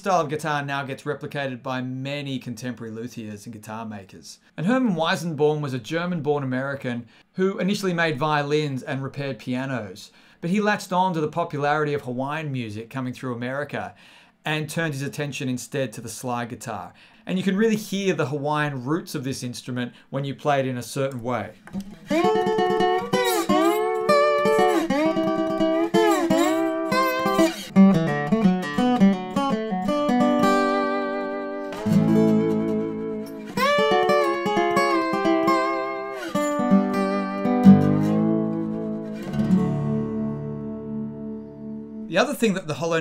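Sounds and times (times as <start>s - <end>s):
lap slide guitar: 21.9s - 42.1s.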